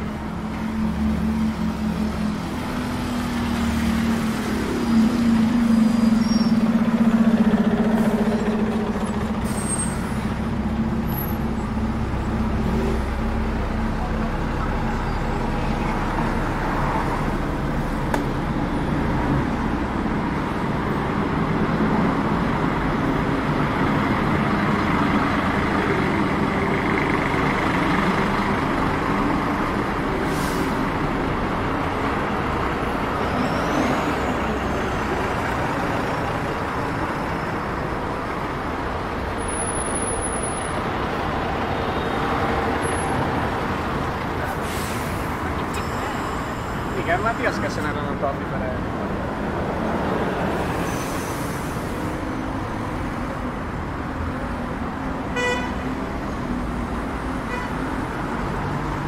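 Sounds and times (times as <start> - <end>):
traffic engine and road noise: 0.0 - 59.0.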